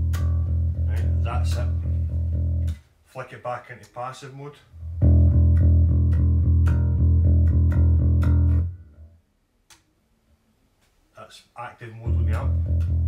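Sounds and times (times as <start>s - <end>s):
electric bass note plucked: 0.0s - 2.8s, 4.8s - 9.1s, 12.1s - 13.0s.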